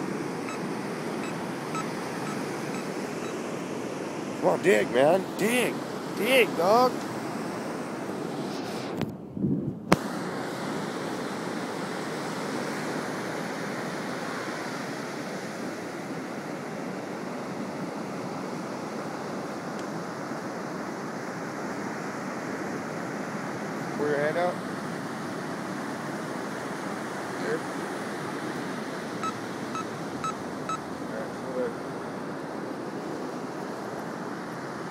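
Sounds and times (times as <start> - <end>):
ocean surf: 0.0 - 9.0, 10.0 - 34.9
wind: 0.0 - 34.9.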